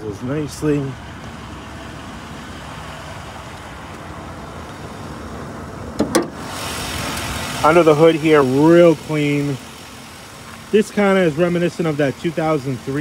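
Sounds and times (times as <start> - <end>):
car engine idling: 0.0 - 13.0
car hood clunks: 5.9 - 6.4.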